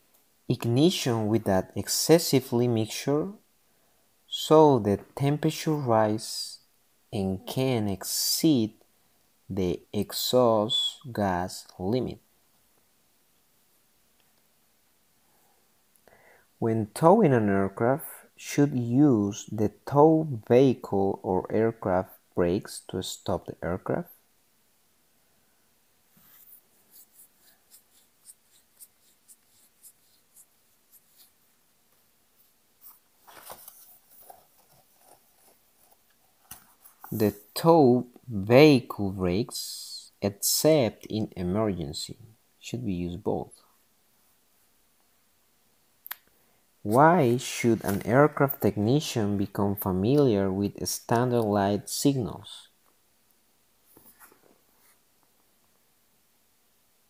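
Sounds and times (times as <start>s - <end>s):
faint scratchy strokes: 26.1s - 31.5s.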